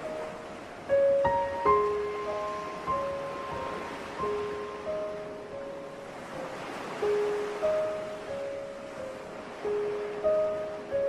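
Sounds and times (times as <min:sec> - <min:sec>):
ocean waves on a beach: 0:00.0 - 0:11.0
slow soft melody: 0:00.0 - 0:11.0.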